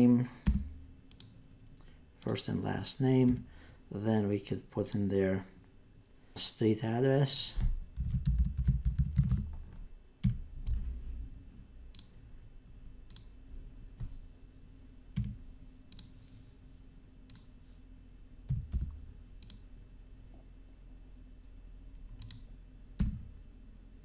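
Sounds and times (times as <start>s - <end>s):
mouse clicks: 0.5s - 2.4s, 13.1s - 13.3s, 15.2s - 16.1s, 17.3s - 17.5s, 19.4s - 19.6s, 22.2s - 23.1s
computer keyboard typing: 8.0s - 9.5s.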